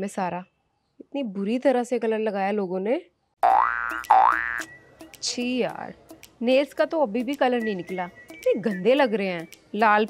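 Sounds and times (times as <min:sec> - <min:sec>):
comedy boing upward slide: 0:03.4 - 0:04.7.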